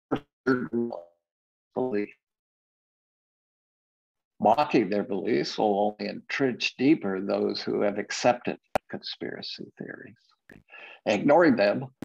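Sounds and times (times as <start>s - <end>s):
man's voice speaking: 1.8s - 2.2s, 4.4s - 10.2s, 11.0s - 12.0s.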